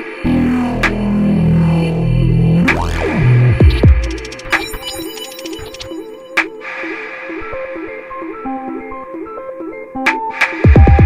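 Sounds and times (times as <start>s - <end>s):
synthesizer repeating notes: 0.3s - 6.6s.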